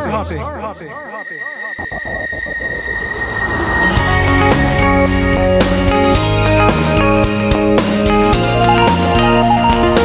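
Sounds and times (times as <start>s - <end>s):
music: 0.3s - 10.0s
falling whistle: 0.4s - 7.0s
steady high tone: 0.4s - 8.0s
low rumbling whoosh: 1.7s - 7.8s.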